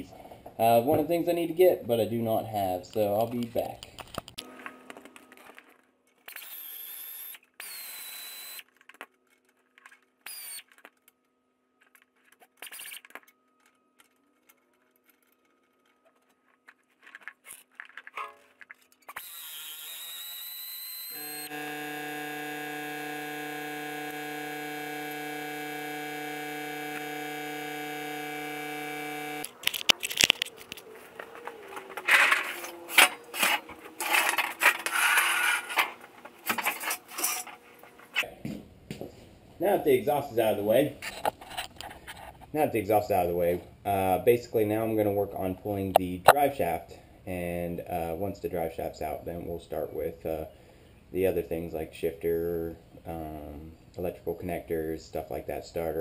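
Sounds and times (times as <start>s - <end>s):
hand tools scraping and clicking: 11.8s - 20.0s, 29.4s - 39.1s, 41.0s - 42.5s.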